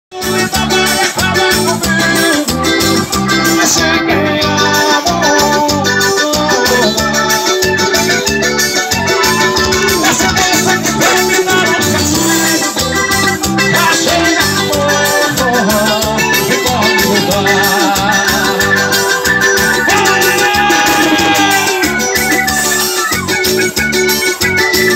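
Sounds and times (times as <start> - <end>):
organ-like keyboard melody: 0.1 - 24.9
drum and bass beat: 0.2 - 24.9.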